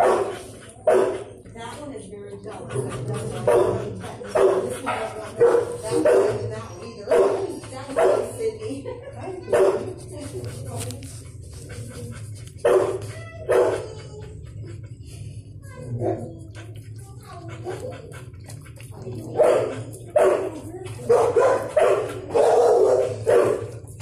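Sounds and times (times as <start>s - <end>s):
dogs barking: 0.0s - 1.8s, 2.4s - 10.4s, 11.5s - 14.9s, 15.8s - 24.0s.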